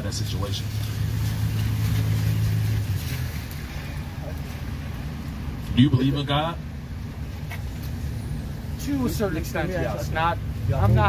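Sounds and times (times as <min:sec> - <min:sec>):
tyres hissing on wet road: 0:00.0 - 0:06.5
vehicle engine humming: 0:00.0 - 0:11.0.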